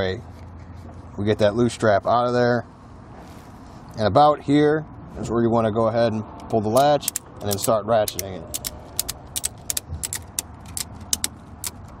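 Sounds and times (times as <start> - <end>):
ratchet strap clicking: 6.4 - 12.0.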